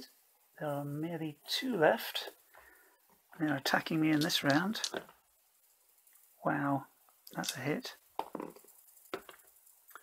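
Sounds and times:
dice clicking: 3.5 - 5.1, 7.3 - 9.6.

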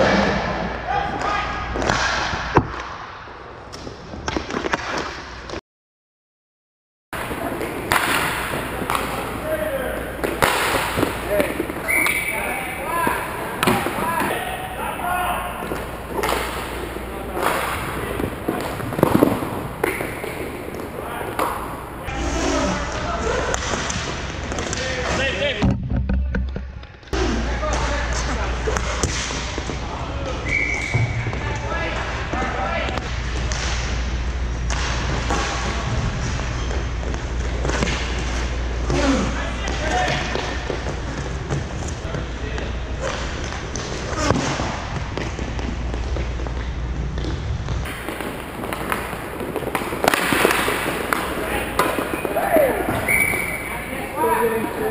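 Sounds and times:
players shouting: 11.2 - 18.8, 50.4 - 54.9
sticks and puck knocking boards: 47.9 - 53.0.

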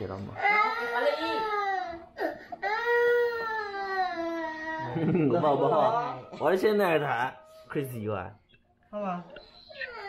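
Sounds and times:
toddler crying: 0.4 - 5.0.

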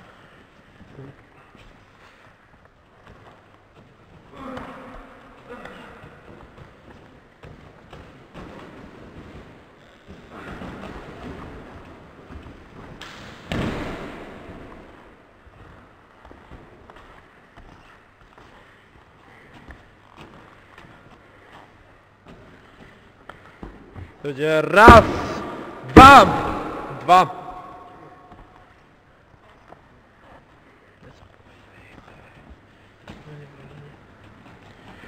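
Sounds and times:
wrestlers scuffling on mats: 0.0 - 26.7, 27.9 - 35.0.

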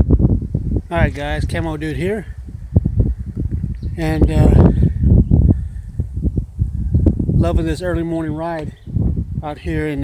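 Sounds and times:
low rumbling and thumping: 2.4 - 8.0.

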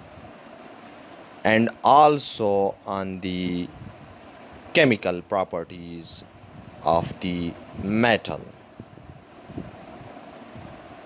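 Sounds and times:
low even hiss: 0.0 - 11.0.

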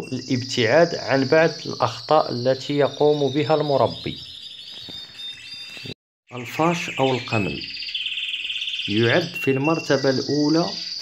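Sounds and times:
caged birds singing: 0.0 - 11.0.

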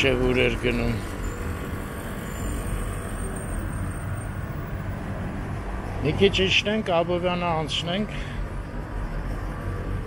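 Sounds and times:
low traffic rumble: 0.0 - 10.0.

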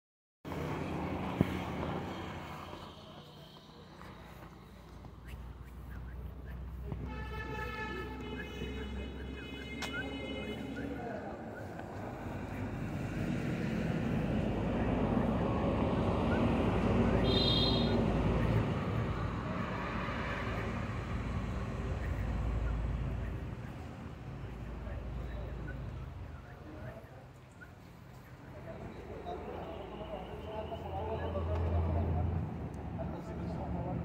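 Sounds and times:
truck engine rumbling: 0.5 - 34.0.

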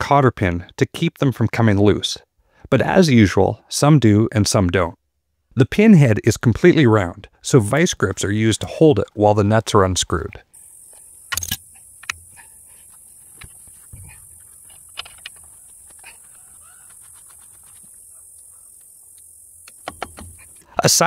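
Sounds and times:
faint steady hiss: 0.0 - 21.0
metal tool clicks and taps: 11.3 - 12.2, 19.7 - 20.4.

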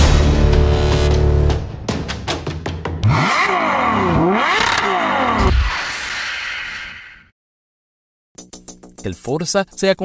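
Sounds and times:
music: 0.0 - 3.0, 8.4 - 10.0
engine revving: 3.0 - 7.2.

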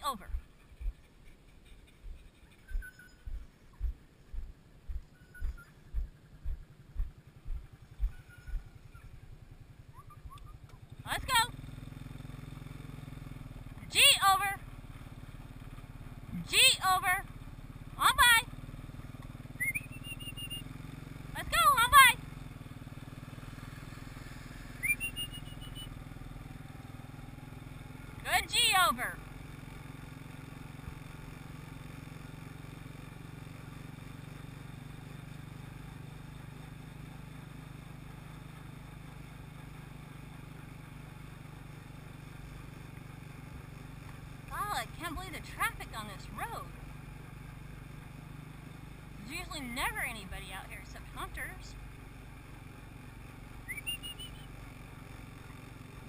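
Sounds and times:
atv engine running: 0.0 - 56.0.

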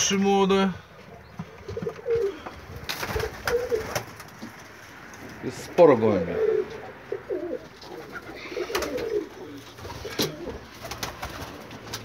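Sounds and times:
pigeons cooing: 1.0 - 4.9, 6.0 - 12.0.

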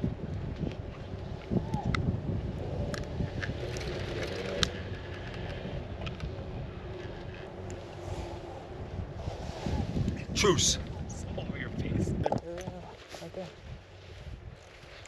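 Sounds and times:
chairlift ride noise: 0.0 - 15.0
wind rumble on microphone: 0.0 - 15.0.

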